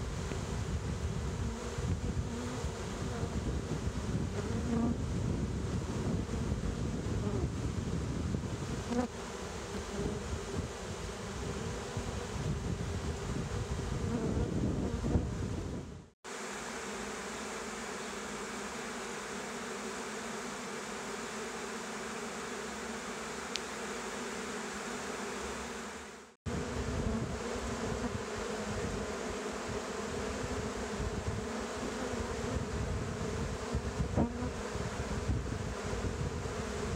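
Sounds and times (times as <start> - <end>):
bee swarm buzzing: 0.0 - 36.9.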